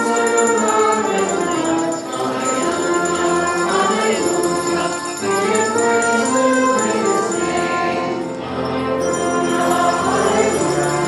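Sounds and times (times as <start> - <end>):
choir singing a hymn: 0.0 - 11.0.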